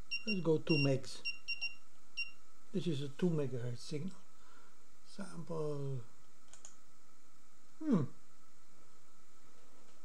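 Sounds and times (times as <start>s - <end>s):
computer mouse clicks: 6.5s - 6.8s.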